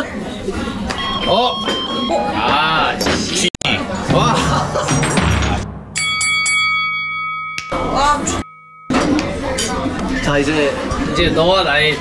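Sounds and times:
noisy background burst: 0:03.9 - 0:06.2
bright bell chime: 0:06.0 - 0:09.8.

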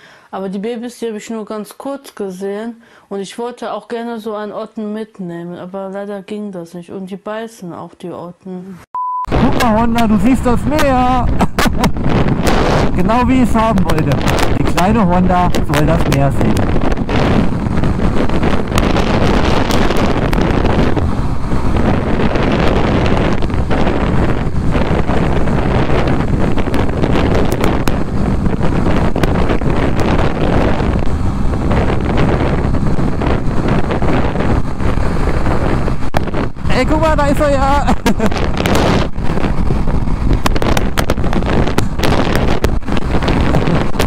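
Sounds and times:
wind buffeting microphone: 0:09.3 - 0:44.0
motorcycle engine running: 0:11.9 - 0:44.0.

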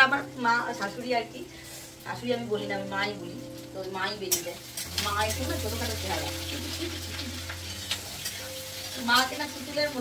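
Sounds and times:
oil sizzling in frying pan: 0:00.0 - 0:10.0
metal spatula stirring: 0:04.3 - 0:09.4.

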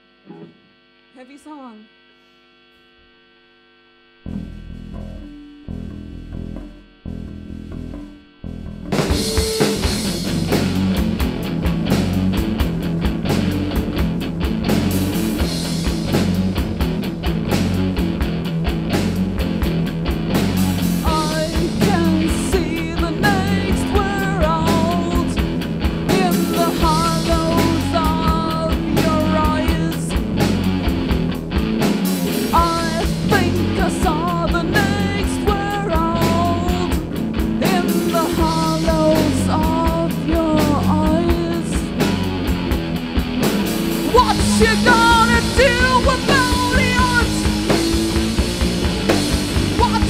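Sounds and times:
amplifier hum: 0:00.0 - 0:50.0
rock band playing: 0:04.3 - 0:50.0
person singing: 0:21.0 - 0:30.2, 0:32.5 - 0:42.1, 0:44.0 - 0:48.1, 0:49.6 - 0:50.0.

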